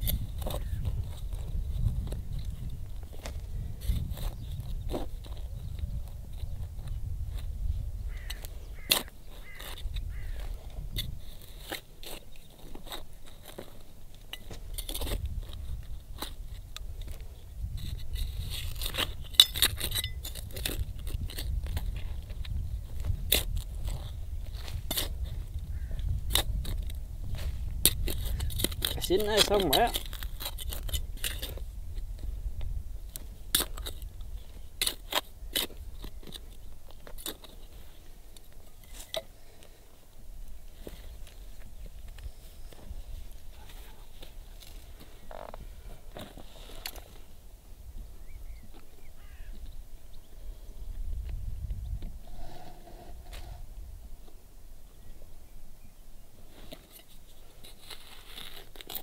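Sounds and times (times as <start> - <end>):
trowel scraping stony soil: 0.0 - 39.8, 40.6 - 47.4, 52.0 - 54.3, 56.4 - 59.0.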